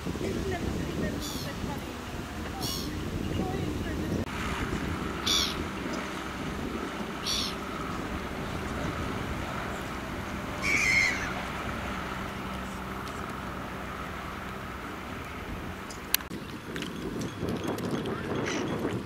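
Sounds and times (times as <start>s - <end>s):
outboard motor running: 0.0s - 19.0s
short high bird calls: 5.2s - 5.6s, 7.2s - 7.6s, 10.6s - 11.4s.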